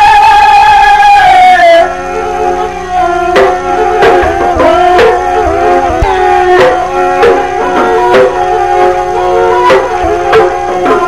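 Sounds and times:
held gliding melody line: 0.0s - 11.0s
sharp drum strokes: 1.9s - 11.0s.

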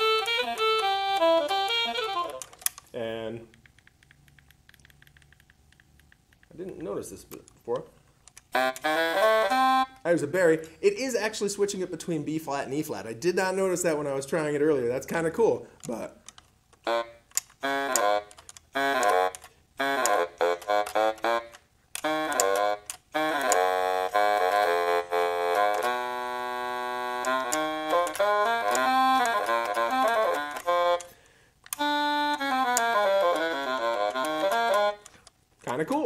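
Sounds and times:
digital baritone saxophone: 0.0s - 3.2s, 8.5s - 10.1s, 16.8s - 35.1s.

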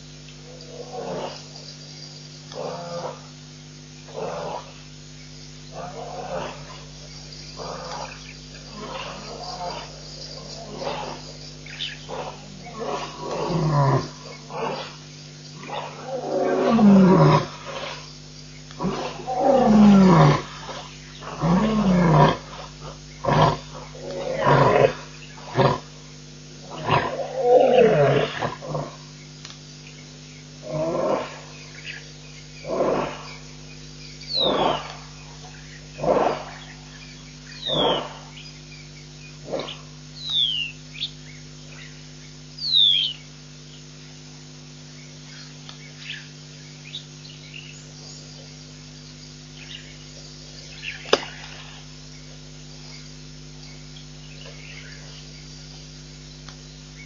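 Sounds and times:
lion roaring: 0.4s - 1.5s, 2.5s - 3.3s, 4.1s - 4.8s, 5.7s - 6.9s, 7.6s - 15.0s, 15.6s - 18.0s, 18.8s - 25.9s, 26.6s - 29.0s, 30.6s - 31.6s, 32.6s - 33.5s, 34.3s - 36.9s, 37.6s - 38.4s, 39.4s - 39.9s
small birds whistling: 6.6s - 12.8s, 31.6s - 43.9s, 44.9s - 55.6s.

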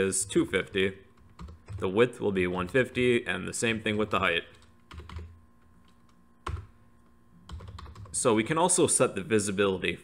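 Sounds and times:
faint steady hum: 0.0s - 10.0s
computer keyboard keystrokes: 1.2s - 1.8s, 4.0s - 6.7s, 7.5s - 8.2s.

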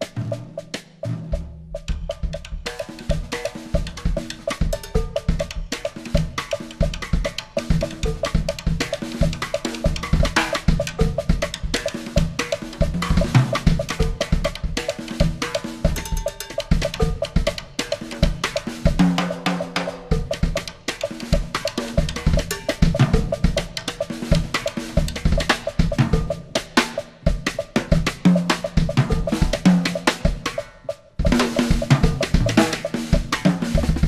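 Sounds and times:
drum kit playing fast strokes: 0.0s - 34.0s.

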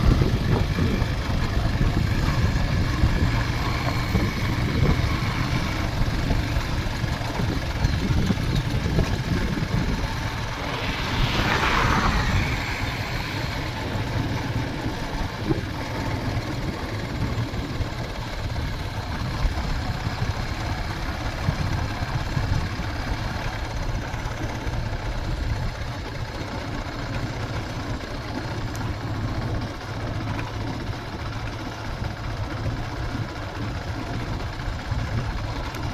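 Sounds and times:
wind noise on microphone: 0.0s - 26.4s
motorcycle engine running: 0.0s - 35.9s.

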